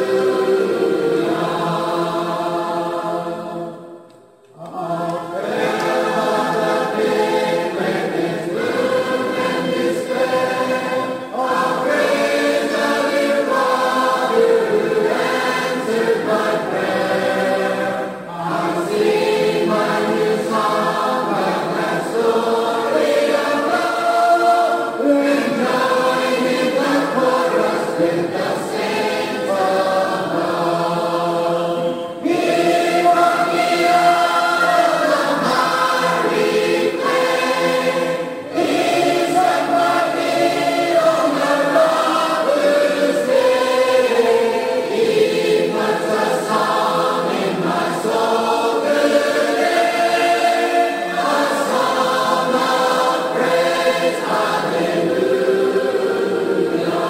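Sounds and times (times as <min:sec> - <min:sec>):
congregation singing a hymn: 0:00.0 - 0:57.0.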